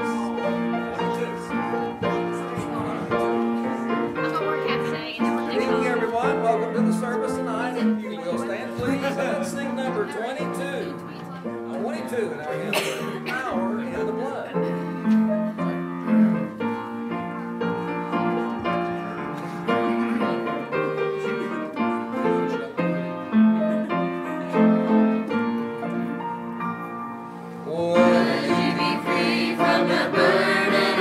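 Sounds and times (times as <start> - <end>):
choir singing a hymn: 0.0 - 8.0, 27.6 - 31.0
piano chords: 0.0 - 31.0.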